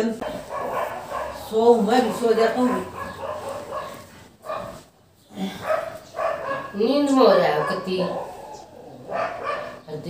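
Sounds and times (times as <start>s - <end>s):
person speaking: 0.0s - 3.8s.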